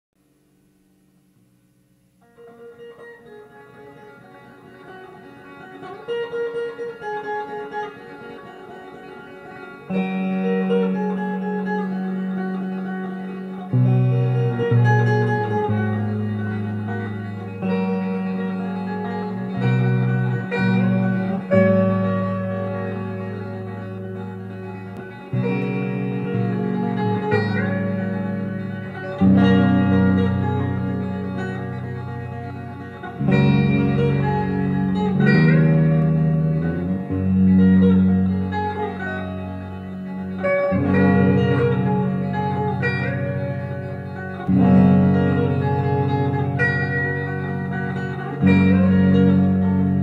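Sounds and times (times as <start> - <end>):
picked guitar: 0.2 - 50.0
low sustained notes: 0.6 - 50.0.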